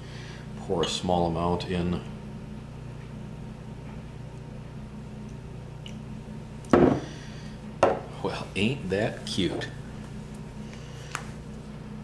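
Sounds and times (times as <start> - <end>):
low room hum: 0.0 - 12.0
glass bottle set down on table: 6.7 - 7.0, 7.8 - 8.0.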